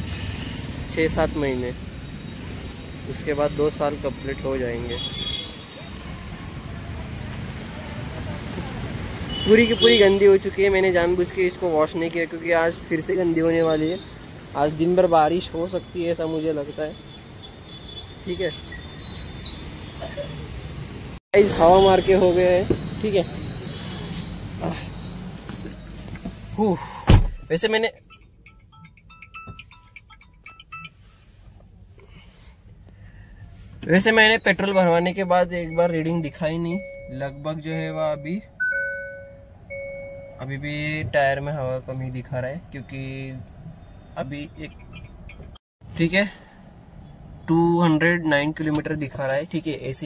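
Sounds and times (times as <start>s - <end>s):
low traffic rumble: 0.0s - 50.0s
car power-on chime: 36.7s - 40.4s.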